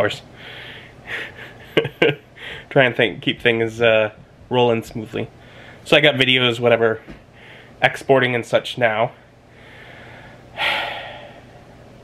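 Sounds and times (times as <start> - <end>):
man breathing: 0.3 - 1.6, 2.4 - 2.7, 5.4 - 5.8, 7.3 - 7.8, 9.2 - 11.8
man exhaling sharply: 9.6 - 11.5.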